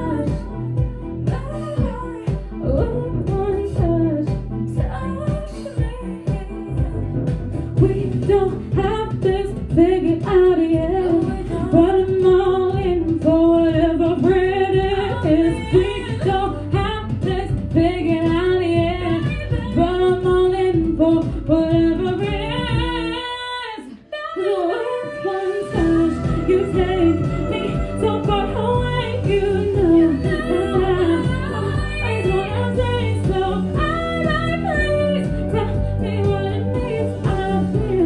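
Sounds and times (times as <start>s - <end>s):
backing music with bass and beat: 0.0s - 23.3s, 25.0s - 38.0s
woman singing into microphone: 0.0s - 38.0s.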